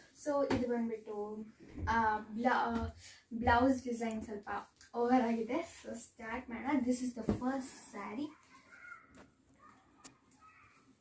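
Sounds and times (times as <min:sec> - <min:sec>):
girl talking: 0:00.2 - 0:08.9.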